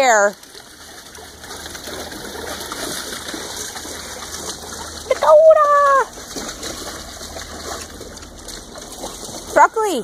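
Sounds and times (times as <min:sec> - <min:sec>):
open yard background noise: 0:00.0 - 0:10.0
woman calling out: 0:05.1 - 0:06.1.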